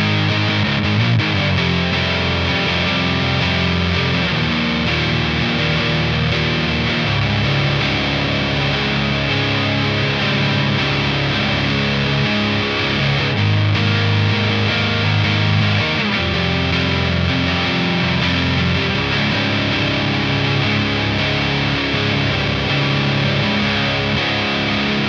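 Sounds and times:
distorted electric guitar chords: 0.0 - 25.0.

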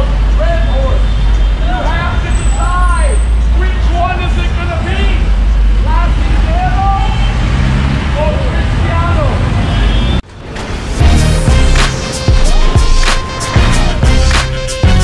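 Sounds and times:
traffic rumble: 0.0 - 15.0
man preaching loudly: 5.9 - 7.2.

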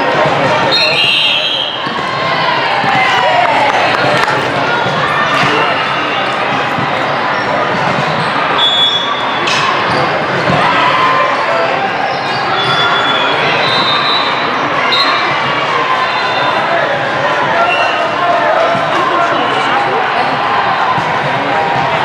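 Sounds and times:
indistinct voices: 0.0 - 22.0.

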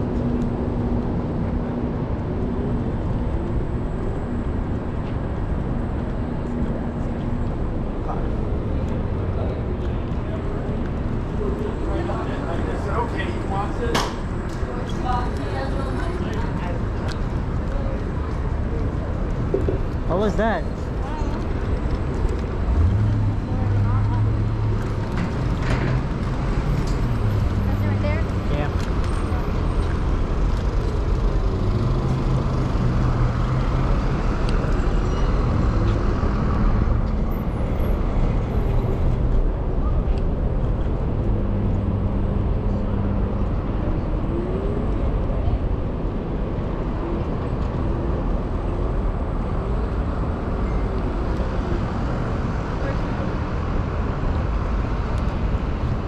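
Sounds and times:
street traffic noise: 0.0 - 56.0.

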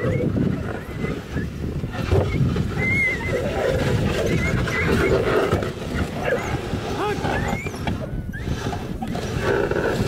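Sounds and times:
sled dogs whining and yelping: 0.0 - 10.0
sled moving on snow: 0.0 - 10.0.

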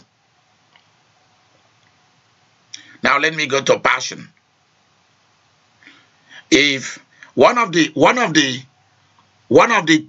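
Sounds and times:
intake of breath: 5.8 - 6.5.

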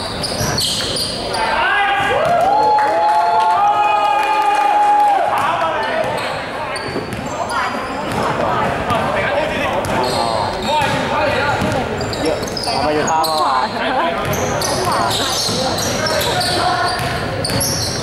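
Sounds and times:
sneaker squeaks: 0.0 - 1.6, 5.8 - 9.0, 9.8 - 18.0
people calling out and talking: 0.0 - 18.0
basketball dribbling indoors: 10.6 - 11.9, 14.2 - 18.0.

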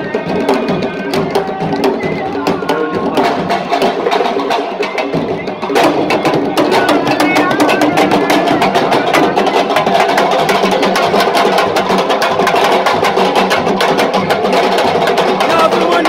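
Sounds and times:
crowd voices: 0.0 - 16.0
fast drumming: 0.0 - 16.0.

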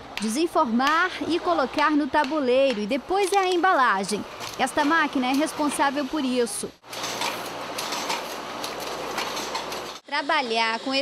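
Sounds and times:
packaging machine running: 6.8 - 10.0.

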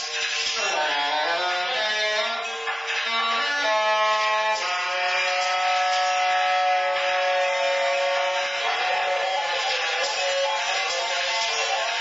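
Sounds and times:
saxophone playing: 3.3 - 11.9.

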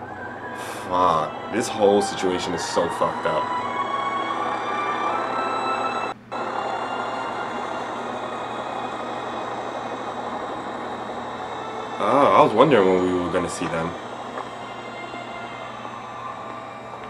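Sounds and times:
airship engine drone: 0.0 - 17.0.

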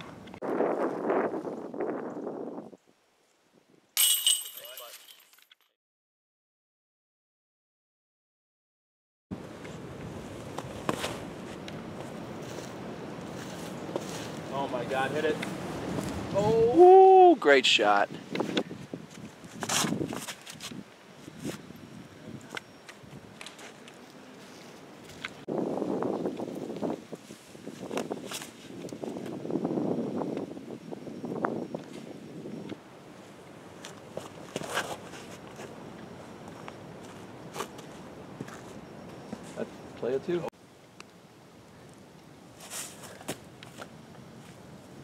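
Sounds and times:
footsteps in dry leaves: 12.3 - 14.6.

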